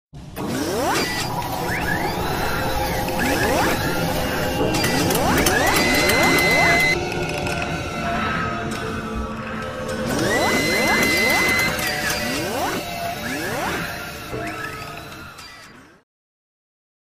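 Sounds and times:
rising mechanical whirs: 0.2 - 16.0
steady high whine: 0.4 - 15.4.

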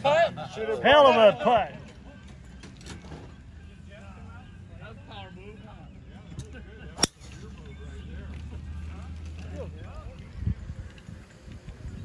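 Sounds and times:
faint voices: 0.0 - 12.0
golf club striking ball: 7.0 - 7.4.

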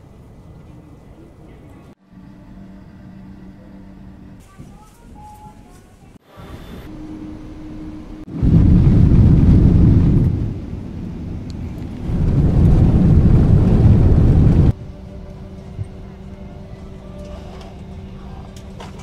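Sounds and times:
jet engines roaring: 6.2 - 19.0
cabin hum: 6.3 - 19.0.

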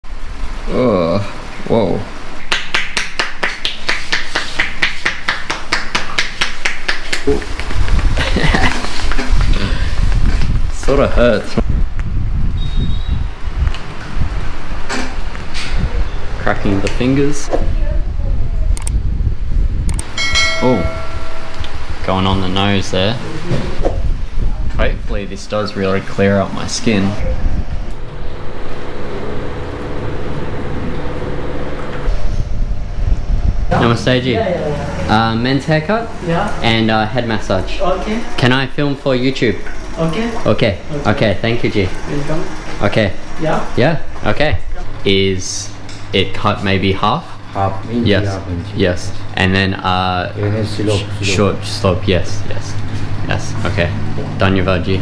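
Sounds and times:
faint hum: 17.7 - 39.6
low rumble: 27.0 - 55.0.

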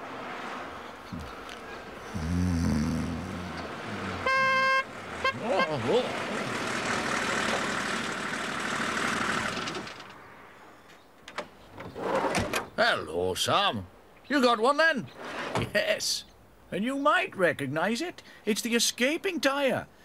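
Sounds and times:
vehicle horn toot: 4.1 - 5.9
fire engine motor running: 6.1 - 9.9.

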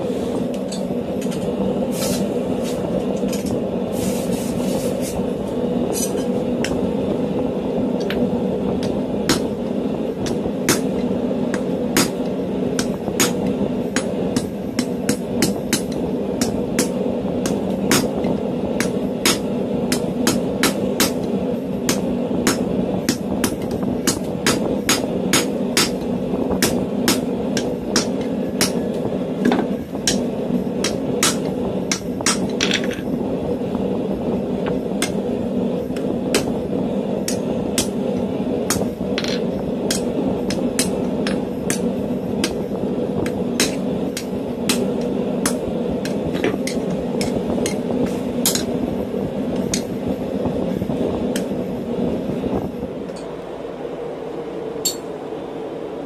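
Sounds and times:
constant low rumble: 0.0 - 56.0
hammer striking steel on anvil: 10.2 - 21.3, 21.9 - 28.8, 30.8 - 32.9, 43.2 - 48.7, 54.8 - 55.1.

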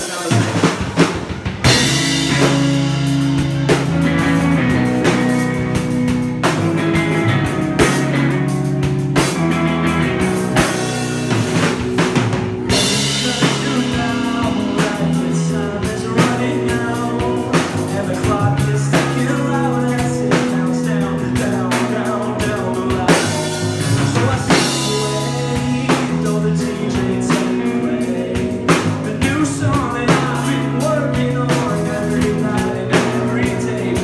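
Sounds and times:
drum hits: 0.0 - 19.3
drum kit beat: 0.0 - 34.0
electric bass: 0.0 - 34.0
electric guitar chords: 0.0 - 34.0.

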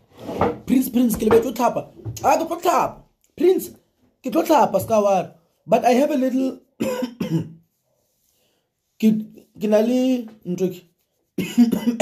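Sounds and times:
man coughing: 6.8 - 7.6, 11.4 - 12.0.

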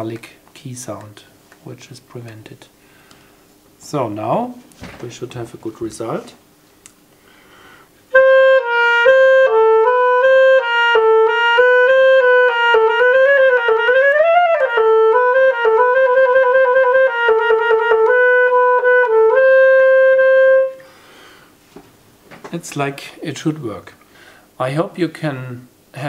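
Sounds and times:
clarinet playing quick notes: 8.1 - 20.8.

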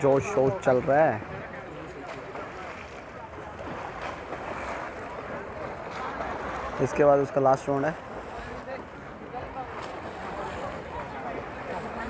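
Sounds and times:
swimmers splashing: 0.0 - 12.0.

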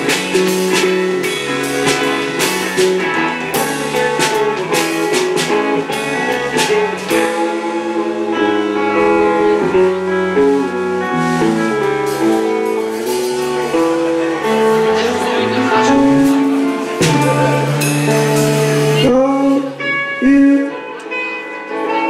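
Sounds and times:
drum kit: 0.0 - 21.3
bass guitar: 0.0 - 22.0
electric guitars: 0.0 - 22.0.

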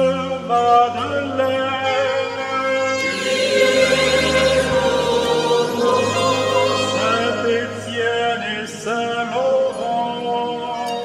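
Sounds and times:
church choir singing: 0.0 - 10.9
low accompanying note: 2.9 - 8.0.

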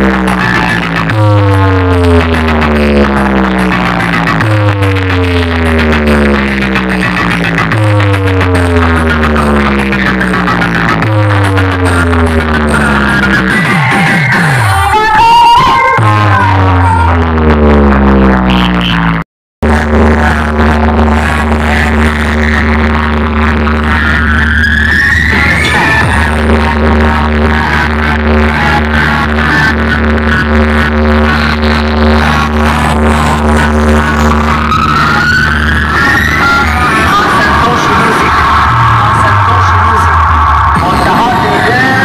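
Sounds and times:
heavy sustained bass: 0.0 - 15.0, 15.9 - 19.0, 19.6 - 42.0
loud electronic dance music: 0.0 - 42.0
pitch sweeps: 34.1 - 42.0.

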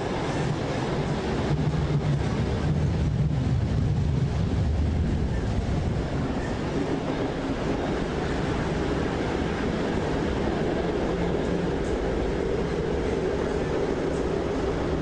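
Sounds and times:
train wheels on track: 0.0 - 15.0.

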